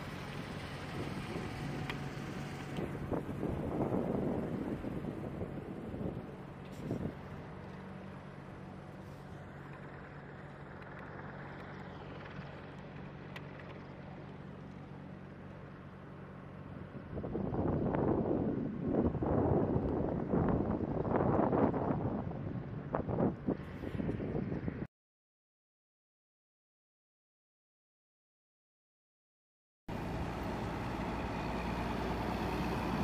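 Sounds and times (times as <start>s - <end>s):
helicopter engine hum: 0.0s - 24.8s, 29.9s - 33.0s
wind buffeting microphone: 0.4s - 7.6s, 16.8s - 24.9s.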